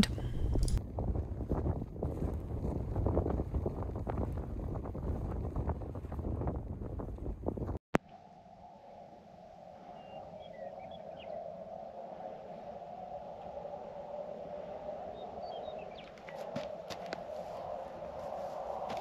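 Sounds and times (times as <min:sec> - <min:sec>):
wind buffeting microphone: 0:00.0 - 0:07.8, 0:09.6 - 0:19.0.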